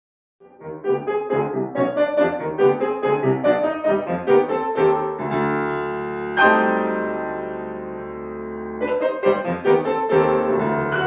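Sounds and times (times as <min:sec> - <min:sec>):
grand piano classical piece: 0:00.4 - 0:11.0.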